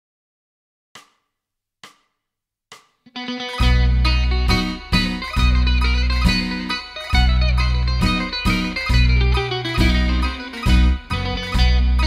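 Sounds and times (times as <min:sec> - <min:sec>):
sharp percussive clicks: 0:01.0 - 0:03.1.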